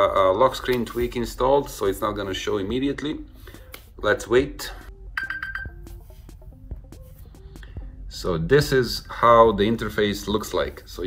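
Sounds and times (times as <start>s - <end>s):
phone alarm ringtone: 5.2s - 6.0s.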